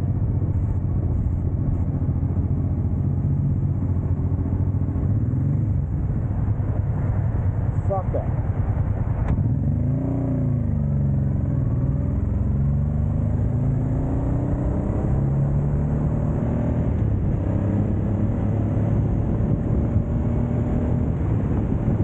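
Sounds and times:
motorcycle engine accelerating: 0.0 - 22.0
road rumble: 0.0 - 22.0
wind: 0.0 - 22.0.

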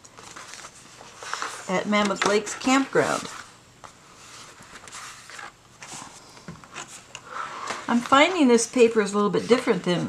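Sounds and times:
paper rustling and sliding: 0.2 - 9.8.

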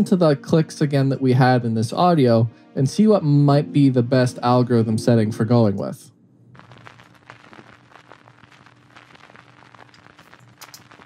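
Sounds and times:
faint hiss: 1.8 - 11.0
vinyl record crackle: 3.9 - 11.0.

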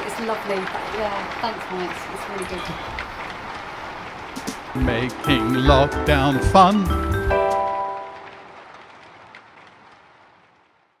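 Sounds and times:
acoustic guitar chord ringing: 4.8 - 8.4.

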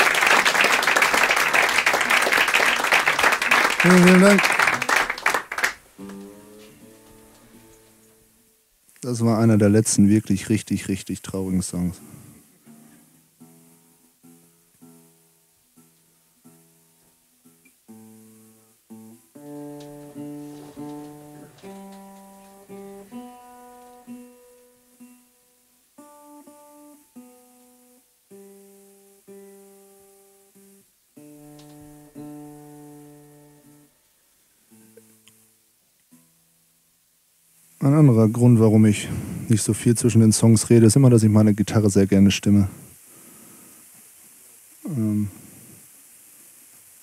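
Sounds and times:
acoustic guitar strings plucked: 5.9 - 8.4, 12.4 - 27.8.

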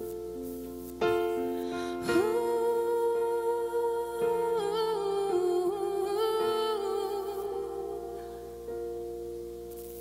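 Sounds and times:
electric keyboard chords: 0.0 - 10.0
woman singing long note: 2.0 - 8.4.

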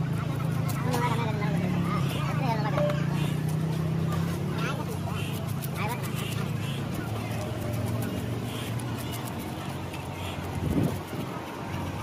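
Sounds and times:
low engine hum: 0.0 - 12.0
people's voices: 0.0 - 12.0.

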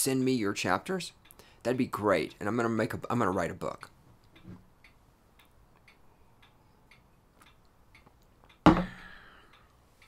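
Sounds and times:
faint regular ticking: 0.0 - 10.0.

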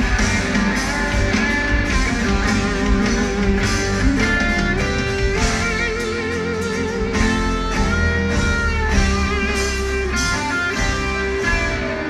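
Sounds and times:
bass and drums: 0.0 - 12.0
electric guitar solo: 0.0 - 12.0.

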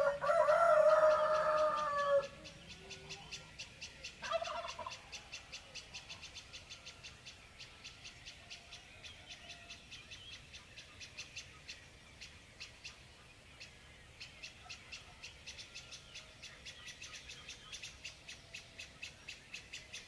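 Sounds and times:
rooster crowing: 0.0 - 2.4.

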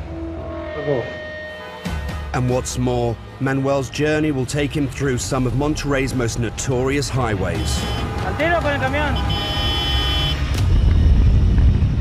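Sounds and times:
road traffic rumbling: 4.3 - 12.0
vehicle horn: 7.5 - 10.6.

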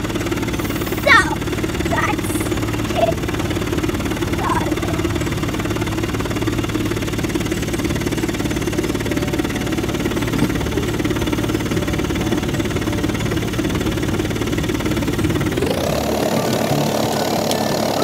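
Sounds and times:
vibrating therapy vest drone: 0.0 - 18.0.

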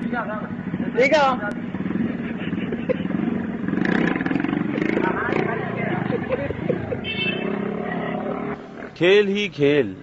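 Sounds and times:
small motorcycle engine revving: 3.2 - 8.9.

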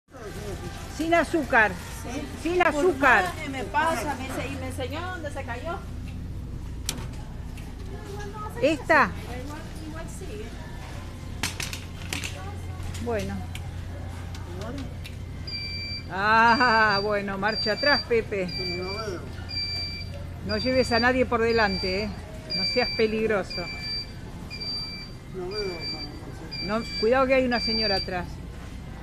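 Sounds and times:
steady low hum: 0.2 - 29.0
high electronic reversing beep: 15.5 - 28.2.

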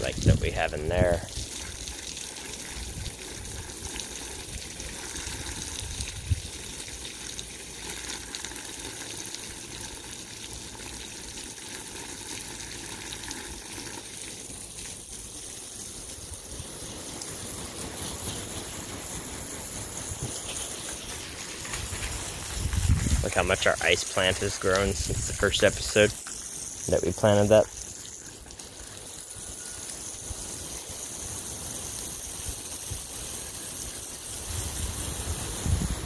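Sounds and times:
hose water splashing on soil: 0.0 - 36.0.

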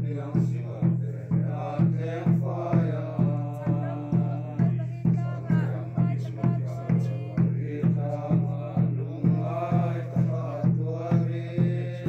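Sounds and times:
group singing a hymn: 0.0 - 12.0
steady drum beat: 0.0 - 12.0.

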